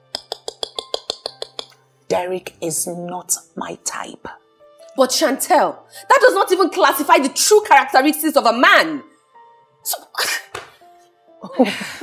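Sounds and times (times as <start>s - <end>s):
soft background music: 0.0s - 12.0s
woman speaking: 2.1s - 4.4s.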